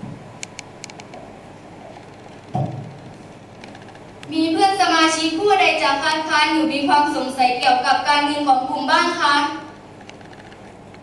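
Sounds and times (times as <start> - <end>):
room noise: 0.0 - 11.0
dull thump: 2.5 - 3.0.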